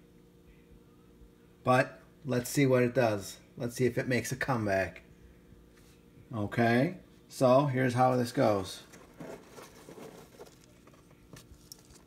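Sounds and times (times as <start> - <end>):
light rubbing: 8.8 - 12.0.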